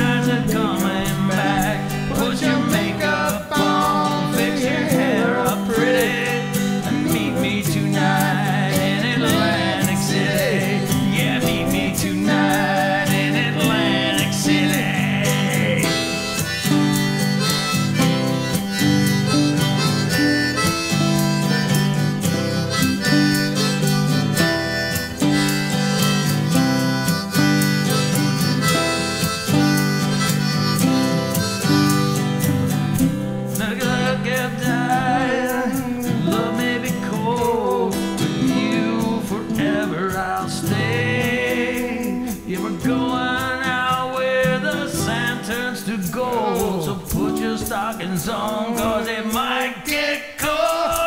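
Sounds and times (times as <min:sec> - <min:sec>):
harmonica solo: 0:00.0 - 0:33.6
person singing: 0:00.0 - 0:51.0
strummed acoustic guitar: 0:00.0 - 0:51.0.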